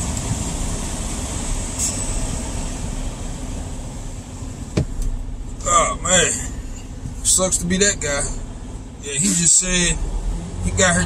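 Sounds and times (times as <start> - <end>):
truck diesel engine running: 0.0 - 11.0.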